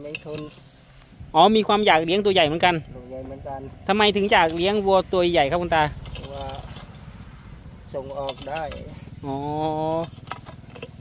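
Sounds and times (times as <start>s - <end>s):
man speaking: 1.3s - 6.7s, 7.9s - 10.1s.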